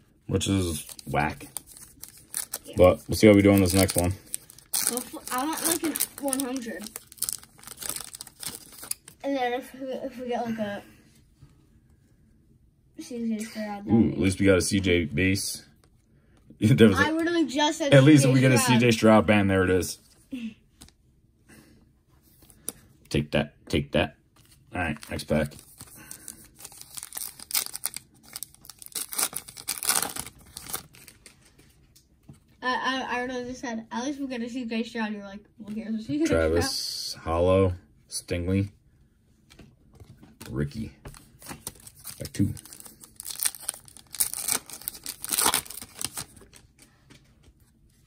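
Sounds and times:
cards rustling: 0.7 - 9.2, 24.4 - 31.8, 39.5 - 47.7
foil wrapper tearing and crinkling: 0.8 - 9.2, 24.9 - 31.3, 41.4 - 46.6.

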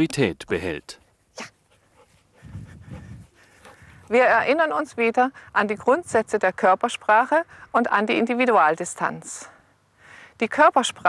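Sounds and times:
dog panting: 1.4 - 4.5.

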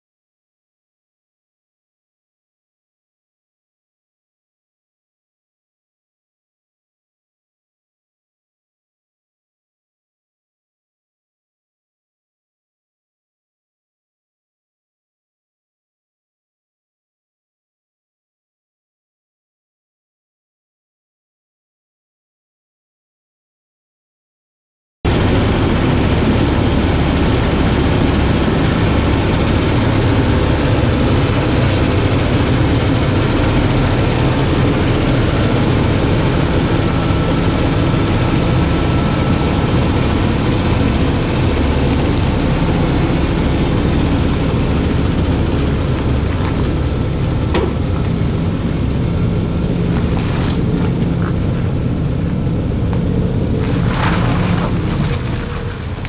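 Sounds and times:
diesel truck engine running: 25.1 - 56.0.

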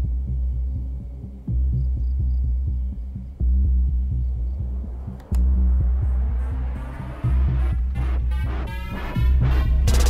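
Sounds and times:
throbbing bass pulse: 0.0 - 10.0.

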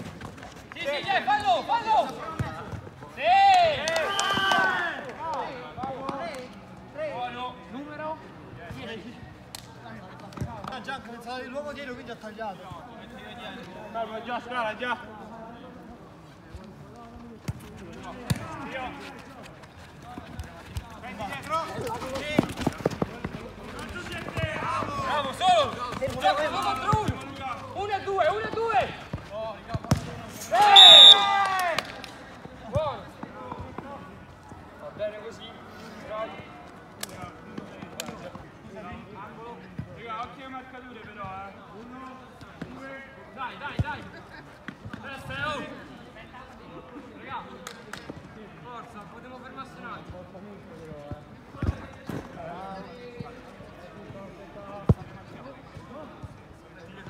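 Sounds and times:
players shouting: 0.8 - 5.5, 23.7 - 29.0, 30.4 - 32.0.

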